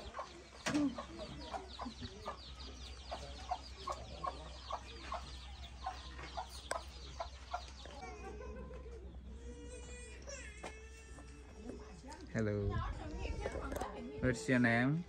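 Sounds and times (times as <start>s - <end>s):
hens clucking: 0.0s - 9.4s.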